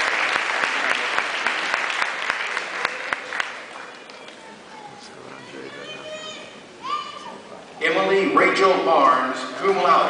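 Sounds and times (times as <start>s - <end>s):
audience chatter: 0.0s - 10.0s.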